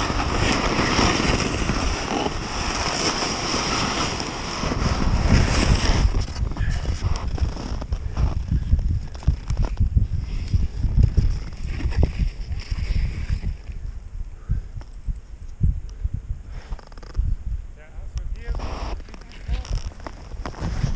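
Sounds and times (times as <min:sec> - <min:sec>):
skis hissing through powder snow: 0:00.0 - 0:07.8, 0:18.5 - 0:19.4
skis crunching and knocking: 0:00.0 - 0:13.7, 0:18.4 - 0:20.9
wind buffeting microphone: 0:00.0 - 0:20.9.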